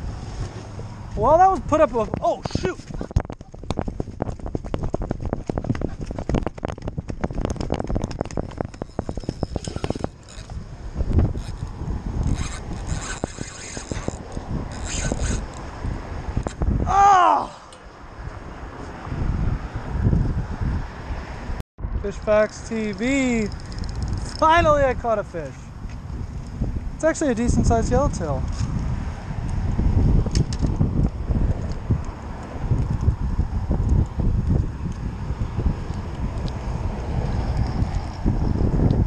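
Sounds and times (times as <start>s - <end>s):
wind on microphone: 0.0s - 39.0s
fishing reel rattling and scraping: 7.7s - 15.7s, 22.2s - 24.8s.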